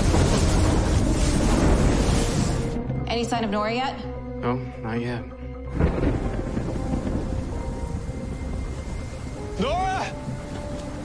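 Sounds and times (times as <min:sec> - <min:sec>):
faint sustained music tones: 0:00.0 - 0:11.0.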